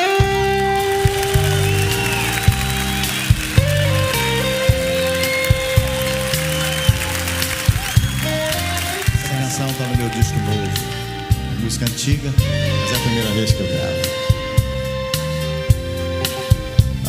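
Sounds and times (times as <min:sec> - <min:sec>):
slow instrumental ballad: 0:00.0 - 0:17.0.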